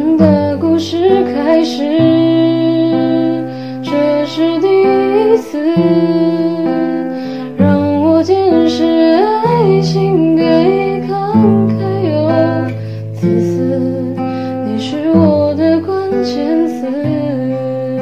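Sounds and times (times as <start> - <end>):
acoustic guitar: 0.0 - 18.0
person singing pop ballad: 0.0 - 18.0.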